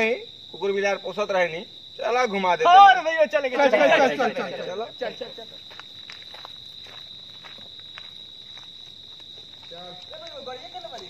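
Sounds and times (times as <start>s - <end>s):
footsteps on paved lane: 5.4s - 11.0s.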